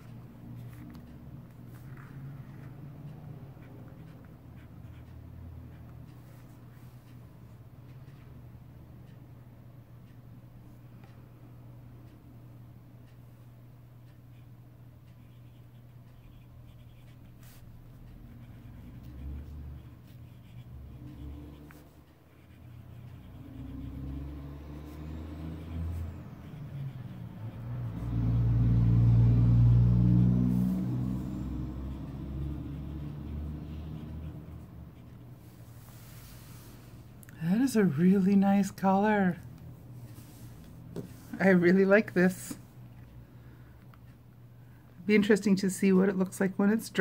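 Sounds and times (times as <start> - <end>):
motor vehicle passing: 0.0 - 7.0, 16.9 - 43.5.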